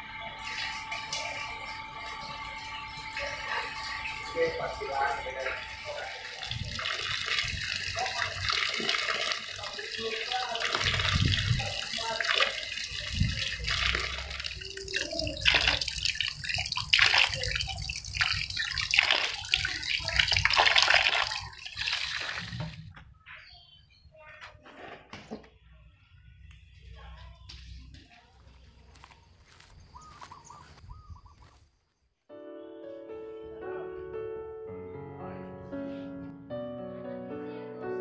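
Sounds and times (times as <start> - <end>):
water running from a tap: 0.0 - 22.9
water splashing in a basin: 0.3 - 23.0.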